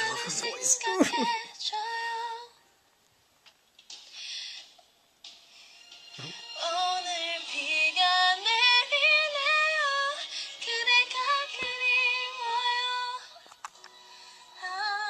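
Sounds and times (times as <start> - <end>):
woman singing with vibrato: 0.0 - 2.5.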